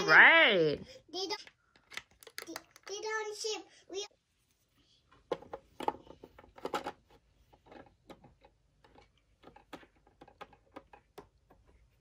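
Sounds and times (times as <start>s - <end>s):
plastic toy clicking and tapping: 1.3s - 3.2s, 7.6s - 11.8s.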